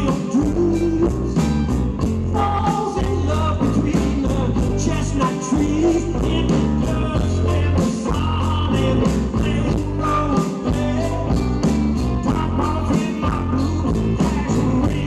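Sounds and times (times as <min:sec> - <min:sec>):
drum kit beat: 0:00.0 - 0:15.0
guitars playing: 0:00.0 - 0:15.0.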